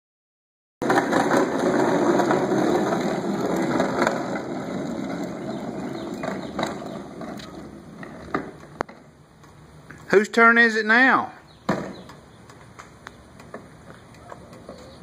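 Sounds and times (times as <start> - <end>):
plastic toy wheels rattling on concrete: 0.8 - 8.9.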